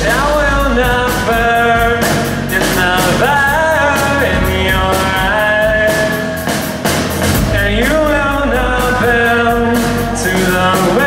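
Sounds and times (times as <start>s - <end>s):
person singing: 0.0s - 6.7s, 7.3s - 11.0s
drums with cymbals: 0.0s - 11.0s.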